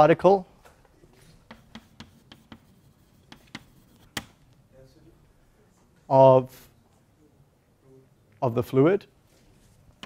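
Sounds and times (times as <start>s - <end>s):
chalk tapping on blackboard: 1.4s - 4.4s.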